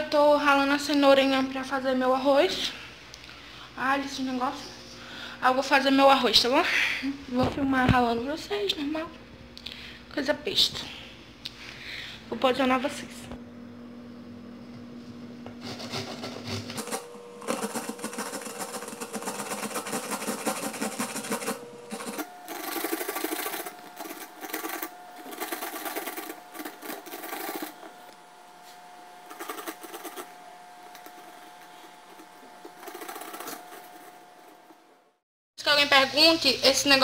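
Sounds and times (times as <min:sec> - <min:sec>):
carrot grated on plastic grater: 0:15.6 - 0:28.0, 0:29.2 - 0:34.8.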